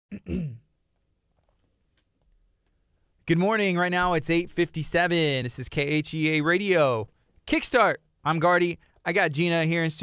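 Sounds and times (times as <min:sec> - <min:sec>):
person clearing throat: 0:00.1 - 0:00.7.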